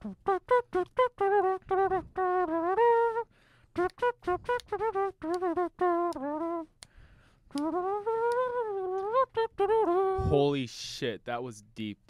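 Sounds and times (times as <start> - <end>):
trumpet solo: 0.0 - 3.2, 3.8 - 6.7, 7.5 - 10.2
trumpeter breath: 3.3 - 3.8, 6.8 - 7.6.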